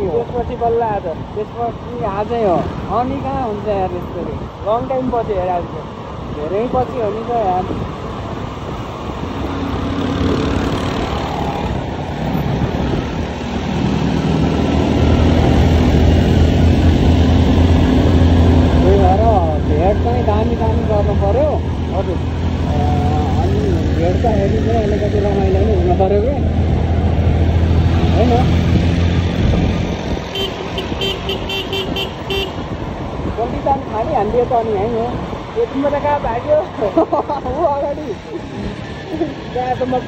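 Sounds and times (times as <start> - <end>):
road and wind noise: 0.0 - 40.0.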